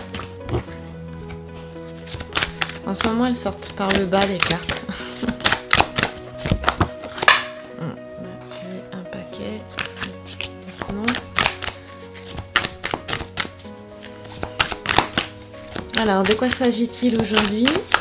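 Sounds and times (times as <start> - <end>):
cards being shuffled: 0.0 - 7.8, 9.6 - 18.0
soft background music: 0.0 - 18.0.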